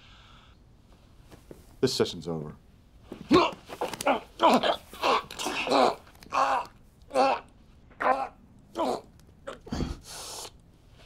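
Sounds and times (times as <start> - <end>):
man's choked groans: 3.3 - 10.1.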